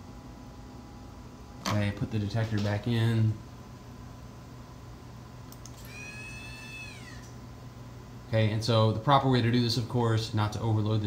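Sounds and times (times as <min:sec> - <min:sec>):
faint clicks: 0:05.5 - 0:05.8.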